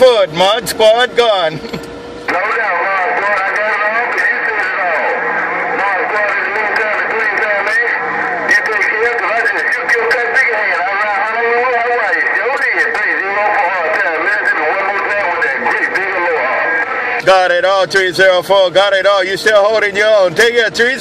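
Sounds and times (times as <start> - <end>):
garbled radio voices: 0.0 - 21.0
radio static hiss: 2.3 - 18.1.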